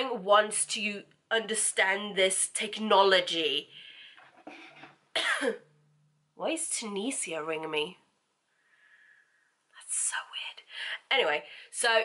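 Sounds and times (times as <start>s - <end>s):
woman whispering: 9.8s - 11.4s.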